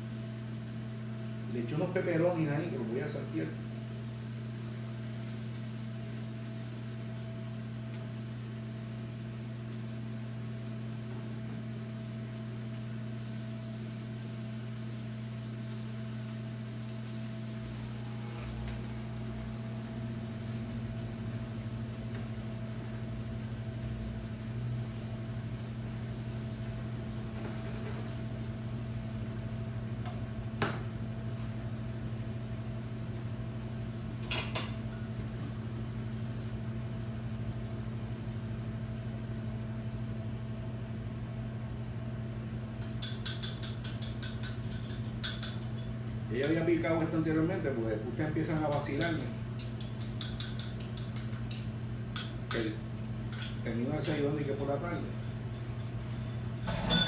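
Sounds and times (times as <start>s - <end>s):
vegetables cooking in a frying pan: 0.0s - 39.8s
low electrical hum: 0.0s - 57.0s
spatula stirring: 42.8s - 45.9s.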